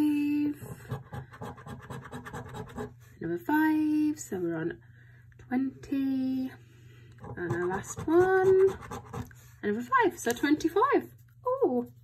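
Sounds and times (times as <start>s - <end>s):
coin scratching scratch card: 0.6s - 2.9s, 7.2s - 9.3s.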